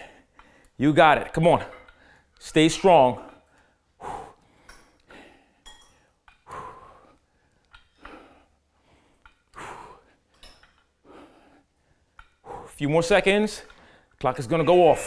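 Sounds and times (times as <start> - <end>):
man breathing hard: 0.0 - 0.8, 3.1 - 12.8, 13.7 - 14.2.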